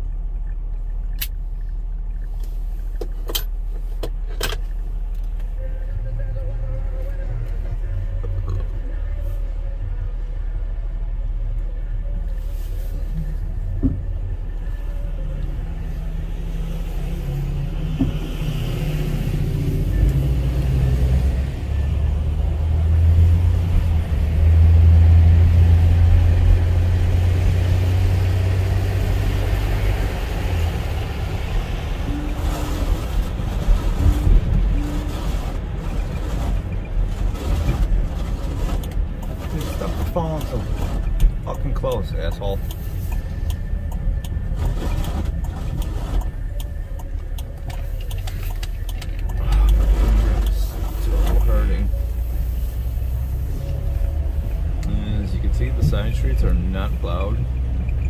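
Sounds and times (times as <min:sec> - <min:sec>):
car engine and road noise: 0:00.0 - 0:58.0.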